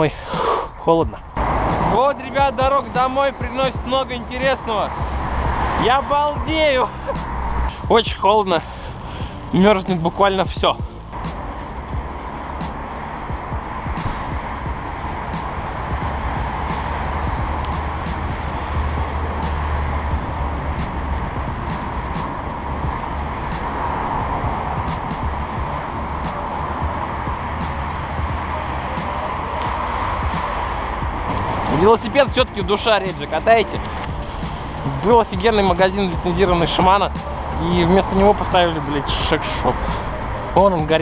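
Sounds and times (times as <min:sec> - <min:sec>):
wind rushing: 0:00.0 - 0:08.0, 0:10.7 - 0:40.6
production music with steady beat: 0:00.0 - 0:41.0.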